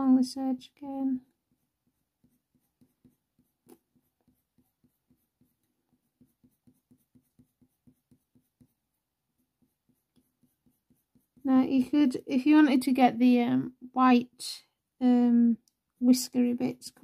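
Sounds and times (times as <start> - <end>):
pencil scratching on paper: 1.1 - 12.6.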